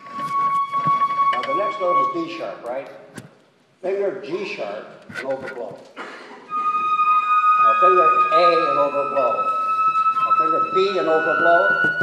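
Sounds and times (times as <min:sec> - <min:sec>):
flutes holding a high note: 0:00.0 - 0:02.6, 0:06.5 - 0:12.0
man's voice: 0:01.4 - 0:02.9, 0:07.6 - 0:09.6, 0:10.2 - 0:12.0.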